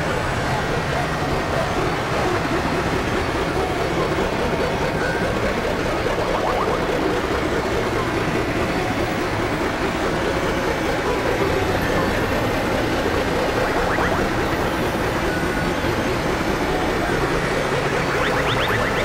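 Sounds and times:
layered music tracks droning: 0.0 - 19.0.

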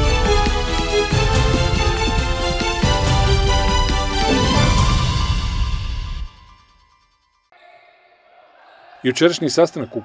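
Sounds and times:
tv theme jingle: 0.0 - 7.4.

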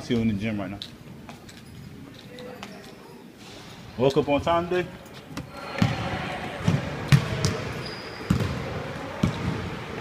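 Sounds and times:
basketballs bouncing on wooden floor: 5.8 - 9.8.

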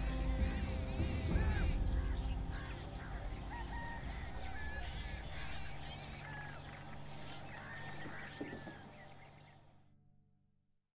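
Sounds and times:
small birds chirping: 0.0 - 9.8.

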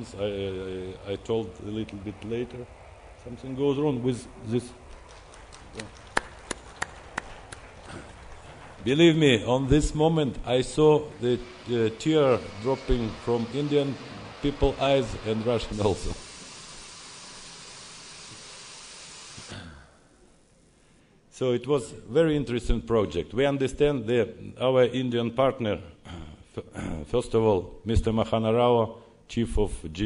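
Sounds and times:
faint low hum: 0.0 - 16.2
steady hiss: 0.0 - 21.4.

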